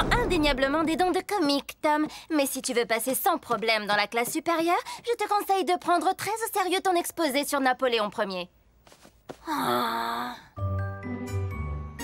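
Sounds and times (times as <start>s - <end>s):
cartoon boy groaning: 9.5s - 10.4s.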